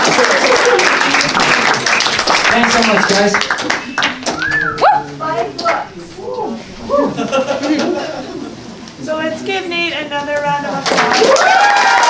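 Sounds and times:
audience applause: 0.0s - 4.8s, 10.8s - 12.0s
crowd voices: 0.0s - 11.6s.

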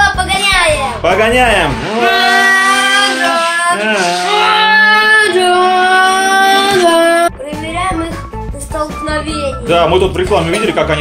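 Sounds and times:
high voice singing: 1.9s - 7.3s.

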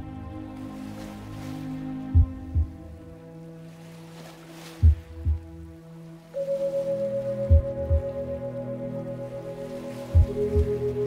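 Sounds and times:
ringing drone tones: 6.4s - 11.0s.

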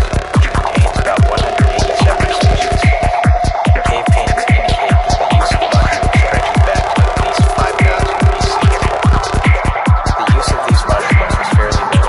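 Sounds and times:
psytrance music: 0.0s - 12.0s.

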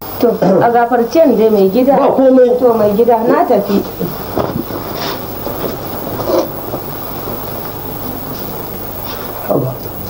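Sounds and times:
film soundtrack hiss: 0.0s - 10.0s.

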